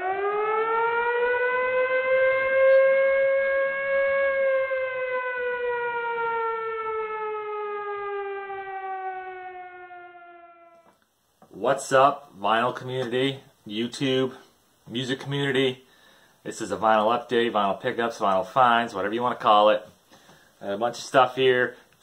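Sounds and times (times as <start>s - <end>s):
air-raid siren wailing: 0.0s - 11.0s.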